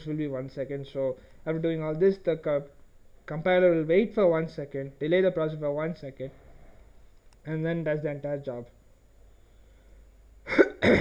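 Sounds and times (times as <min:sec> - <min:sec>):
man coughing: 0:10.4 - 0:11.0.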